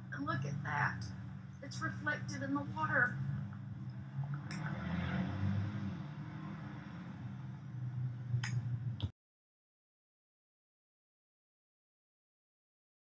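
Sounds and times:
low uneven outdoor rumble: 0:00.0 - 0:09.1.

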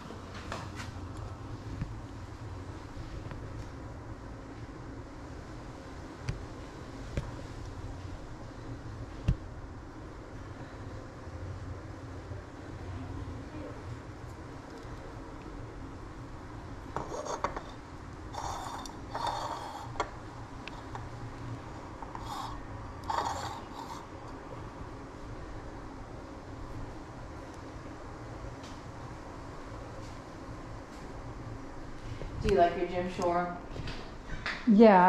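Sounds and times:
low steady rumble: 0:00.0 - 0:35.0
ceramic rubbing and scraping: 0:16.9 - 0:21.1, 0:21.9 - 0:24.4.

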